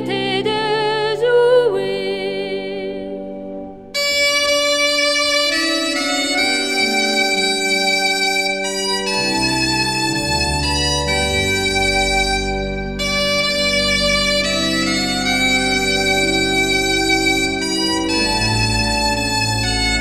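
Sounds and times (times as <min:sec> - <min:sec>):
pipe organ chords: 0:03.4 - 0:20.0
bombarde melody: 0:03.8 - 0:20.0.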